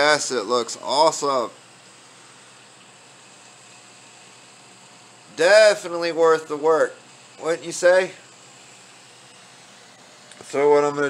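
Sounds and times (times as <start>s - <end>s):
computer cooling fans hissing: 0.0s - 11.0s.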